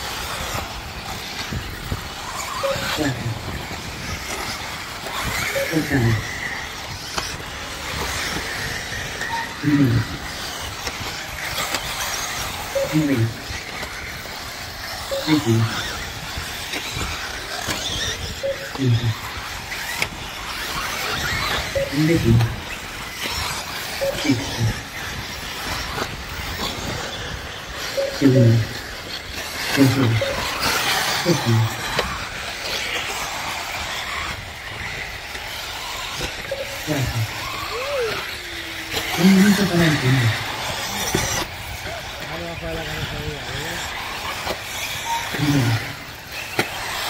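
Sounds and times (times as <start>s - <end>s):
rc buggy engines whining: 0.0s - 47.0s.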